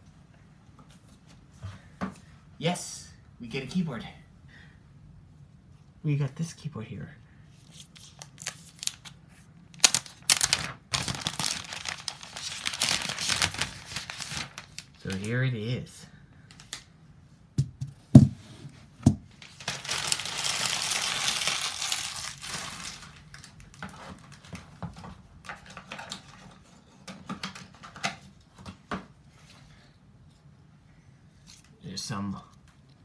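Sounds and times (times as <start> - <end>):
packaging rustling and tearing: 7.7 - 15.3, 19.4 - 24.8
sharp knocks on cardboard: 17.6 - 18.4.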